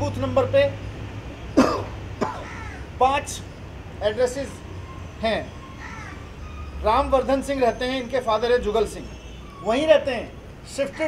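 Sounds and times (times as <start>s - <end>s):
man coughing: 1.6s - 2.5s.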